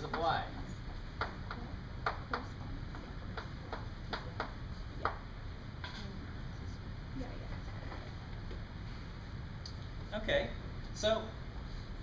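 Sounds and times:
chalk tapping on a blackboard: 0:00.0 - 0:05.2.

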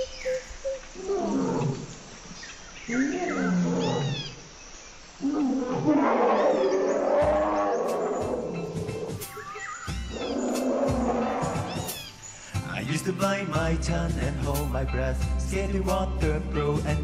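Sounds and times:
jungle bird calls: 0:00.0 - 0:13.0
lion roaring: 0:03.0 - 0:04.3, 0:05.2 - 0:09.2, 0:10.1 - 0:11.9.

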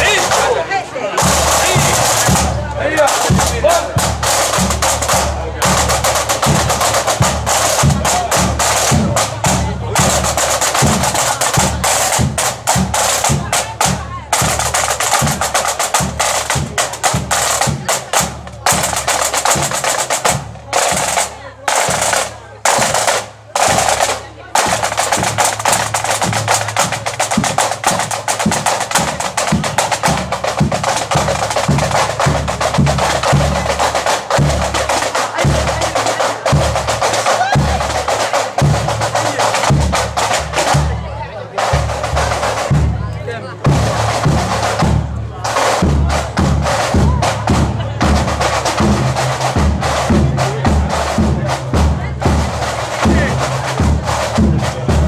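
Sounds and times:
bass drum beating march rhythm: 0:00.0 - 0:55.0
snare drums rolling: 0:00.0 - 0:55.0.

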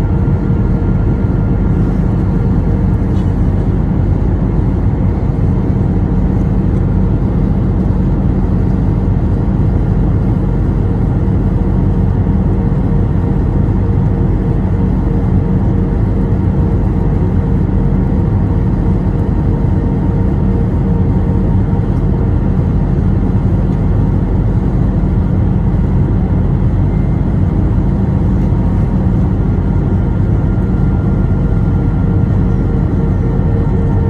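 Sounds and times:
engine and airflow drone: 0:00.0 - 0:34.0
faint steady hums: 0:00.0 - 0:34.0.

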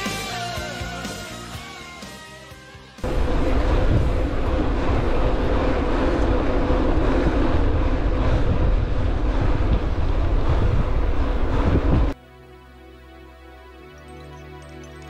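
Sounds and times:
wind buffeting microphone: 0:03.0 - 0:12.2.

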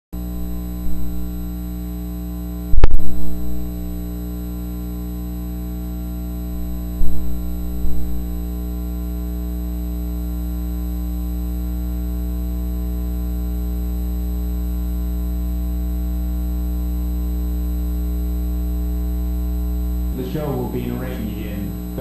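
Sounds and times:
buzzy electrical hum: 0:00.2 - 0:22.0.

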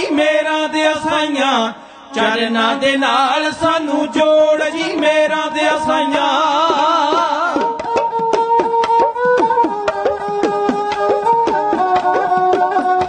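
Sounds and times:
men singing devotional song: 0:00.0 - 0:09.4
bowed sarangi: 0:00.0 - 0:13.0.

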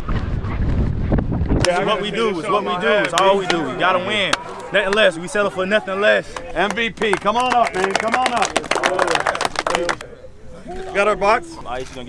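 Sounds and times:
wind buffeting microphone: 0:00.0 - 0:04.3
faint voices: 0:01.6 - 0:12.0.

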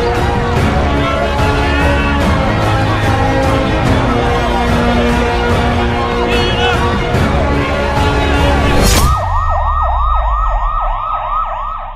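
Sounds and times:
emergency siren yelping: 0:08.2 - 0:11.9.

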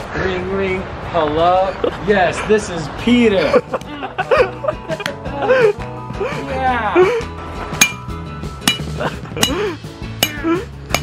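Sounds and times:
phones struck on gravel: 0:07.8 - 0:08.1.

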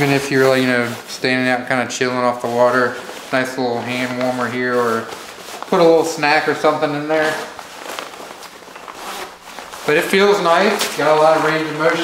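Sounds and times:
nylon fabric rustling: 0:00.0 - 0:12.0
light scuffs: 0:02.0 - 0:12.0.

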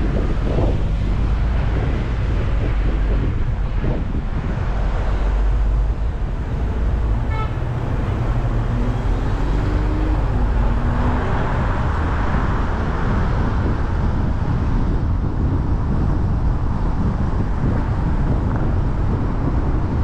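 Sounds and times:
low droning tone: 0:00.0 - 0:13.8
city traffic road noise: 0:00.0 - 0:20.0
wind rumble on microphone: 0:00.0 - 0:20.0
car horn toot: 0:07.2 - 0:07.8.

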